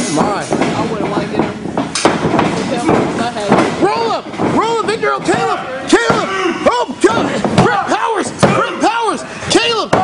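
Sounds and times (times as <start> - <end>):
bodies slamming on ring mat: 1.4 - 10.0
excited shouting voices: 3.8 - 10.0.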